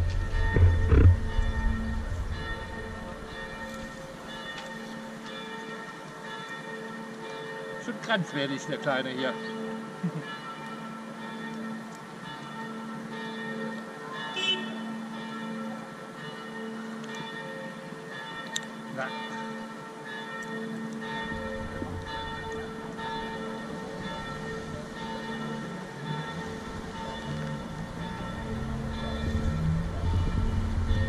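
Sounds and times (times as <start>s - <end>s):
low rumble: 0.0s - 4.0s, 28.4s - 31.0s
church bells ringing: 0.0s - 31.0s.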